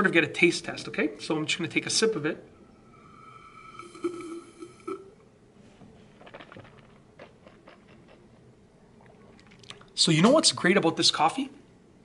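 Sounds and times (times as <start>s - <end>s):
man slurping coffee: 2.9s - 5.2s, 5.8s - 8.4s
swallowing and lip-smacking: 6.1s - 10.0s.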